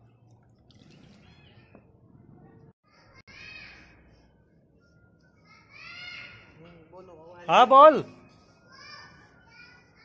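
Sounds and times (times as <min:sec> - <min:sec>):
distant voices with children: 0:01.2 - 0:07.5, 0:08.1 - 0:10.0.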